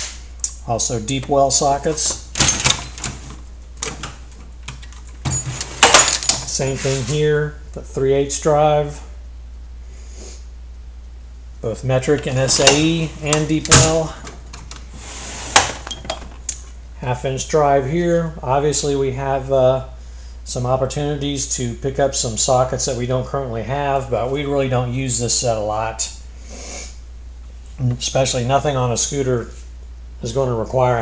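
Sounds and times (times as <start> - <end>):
steady low hum: 0.0 - 31.0
drawer clack: 2.4 - 7.1
metal drawer sliding open: 4.8 - 7.2, 12.2 - 16.2
metal toolbox drawer rattling: 5.2 - 7.2.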